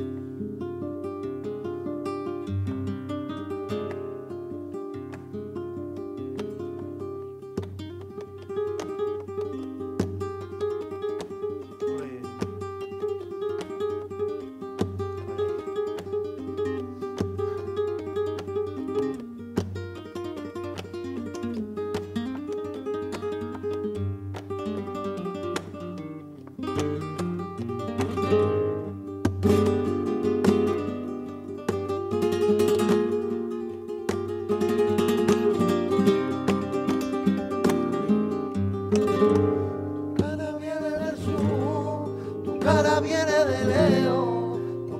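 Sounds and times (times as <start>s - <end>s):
flamenco guitar music: 0.0s - 44.9s.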